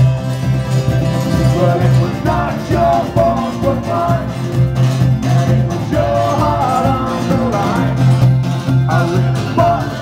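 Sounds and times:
fast-strummed guitar: 0:00.0 - 0:10.0
pulsing bass line: 0:00.0 - 0:10.0.

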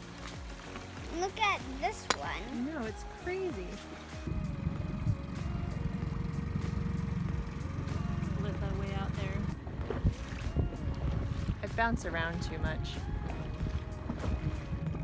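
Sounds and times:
outboard motor running: 0:00.0 - 0:15.0.

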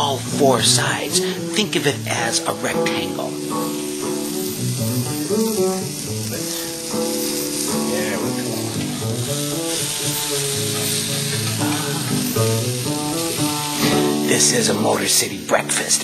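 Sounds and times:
background music: 0:00.0 - 0:16.0
food sizzling in a frying pan: 0:00.0 - 0:16.0.

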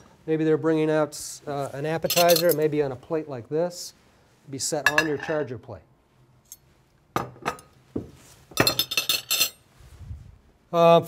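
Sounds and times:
plates and glassware clinking: 0:02.0 - 0:02.6, 0:04.8 - 0:05.5, 0:07.2 - 0:07.7, 0:08.5 - 0:09.6.

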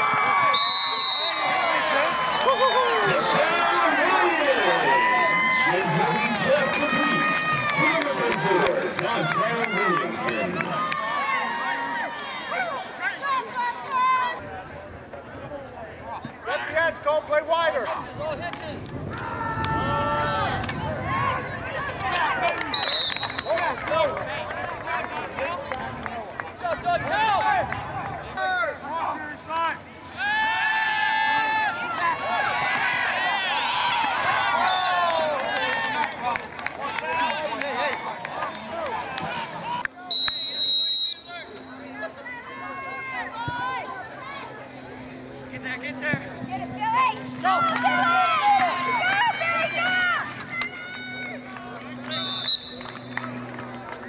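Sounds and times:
crowd shouting: 0:00.0 - 0:14.4, 0:30.1 - 0:45.0, 0:46.5 - 0:53.3
referee's whistle blast: 0:00.5 - 0:01.5, 0:22.7 - 0:23.6, 0:40.1 - 0:41.6, 0:52.1 - 0:53.2
long held shout: 0:30.2 - 0:31.8.

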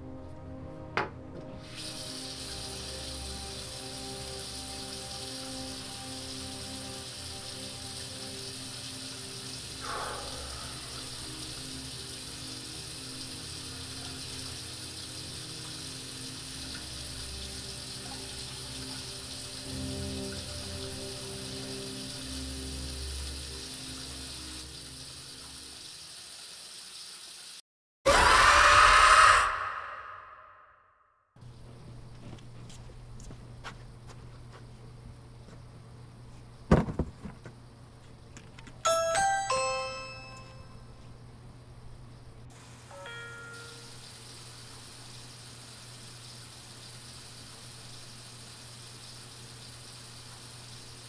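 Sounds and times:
low droning horror music: 0:00.0 - 0:25.7, 0:28.1 - 0:30.6.

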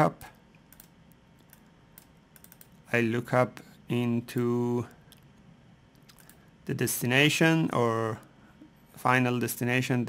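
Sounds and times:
computer mouse clicks: 0:00.6 - 0:02.8, 0:05.9 - 0:06.5.

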